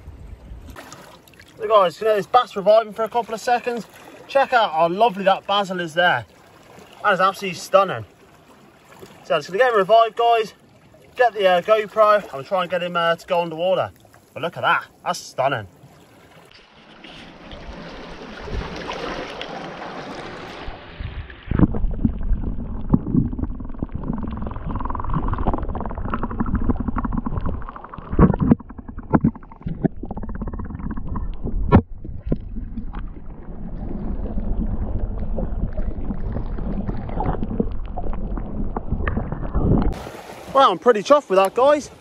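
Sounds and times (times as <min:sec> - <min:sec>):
water sloshing: 0:00.6 - 0:42.0
muffled underwater rumbling: 0:17.0 - 0:40.1.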